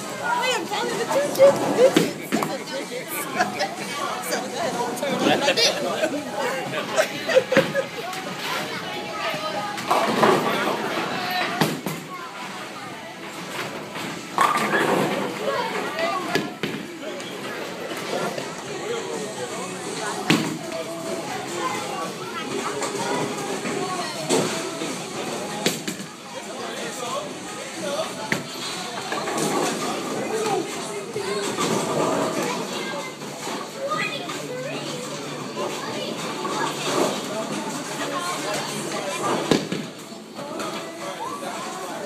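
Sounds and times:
hum of voices: 0.0s - 11.6s
background chatter: 0.0s - 42.0s.

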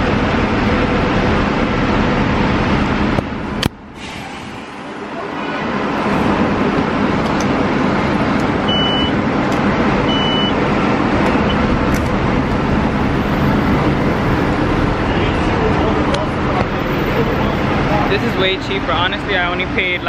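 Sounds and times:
bus and street traffic: 0.0s - 20.0s
vending machine beeps: 8.7s - 9.2s, 10.1s - 10.6s.

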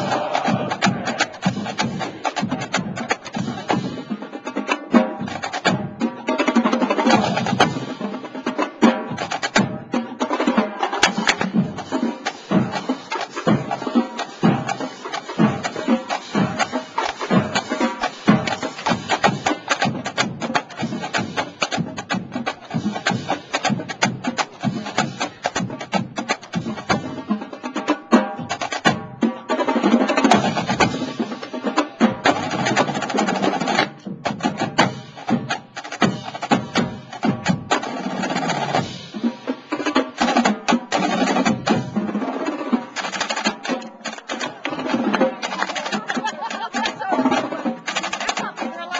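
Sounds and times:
marching snare drums: 0.0s - 48.9s.

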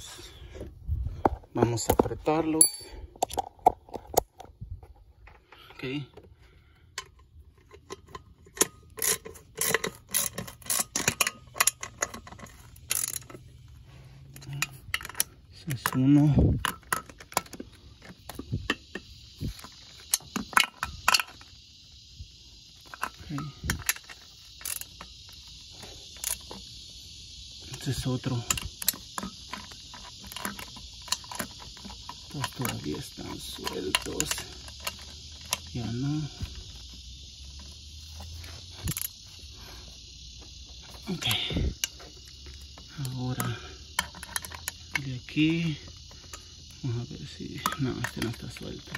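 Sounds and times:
steady high hiss: 0.0s - 0.9s, 5.6s - 48.9s
metal tool taps: 2.6s - 2.9s
hand ratchet clicking: 7.0s - 13.5s.

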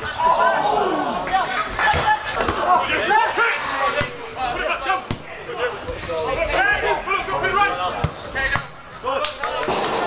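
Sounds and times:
players shouting: 0.0s - 10.0s.

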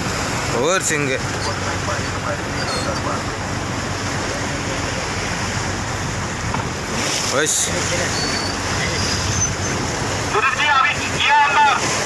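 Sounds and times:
choppy sea waves: 0.0s - 12.0s.

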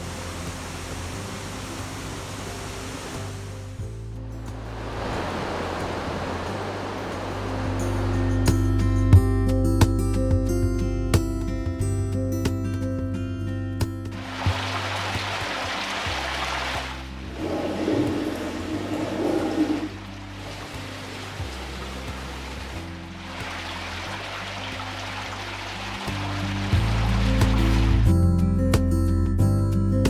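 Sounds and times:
soft background music: 0.0s - 30.0s
water splashing: 4.5s - 8.1s, 14.1s - 28.1s.

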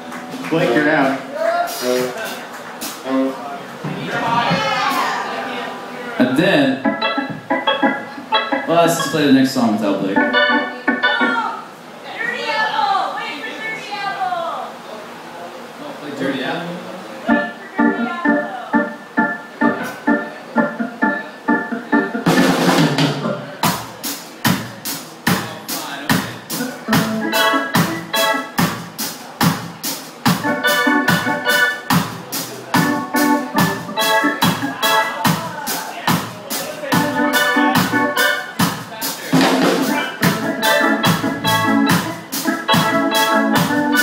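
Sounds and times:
live ska band: 0.0s - 13.9s, 17.2s - 44.0s
organ riff of short notes: 3.0s - 3.5s, 6.2s - 11.5s, 17.3s - 23.5s, 26.5s - 28.6s, 30.3s - 35.5s, 36.9s - 38.6s, 39.3s - 44.0s
drum and cymbal swell: 22.3s - 44.0s.

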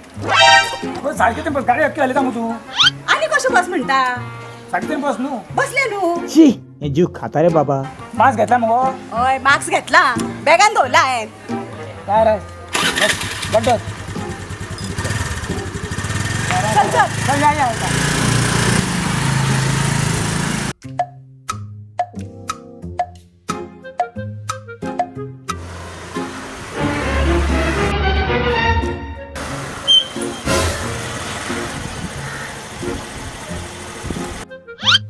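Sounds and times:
background music: 0.0s - 14.6s, 20.8s - 31.6s, 33.4s - 35.0s
motor scooter engine running: 12.7s - 20.8s, 25.6s - 26.8s, 30.4s - 34.4s
wind and road noise: 25.6s - 27.3s, 29.4s - 35.0s
rising whistle: 29.8s - 30.5s.

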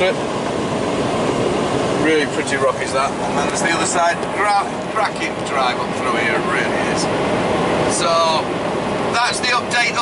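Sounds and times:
diesel engine drone: 0.0s - 10.0s
tyres rumbling on pavement: 0.0s - 10.0s.

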